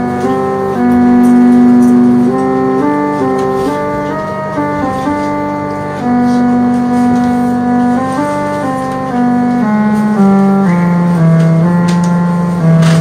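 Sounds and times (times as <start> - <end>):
electronic keyboard organ-like notes: 0.0 - 13.0.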